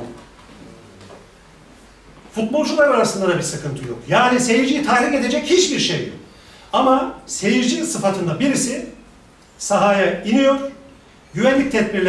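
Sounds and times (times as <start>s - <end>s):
man speaking: 2.3s - 9.0s, 9.6s - 12.0s.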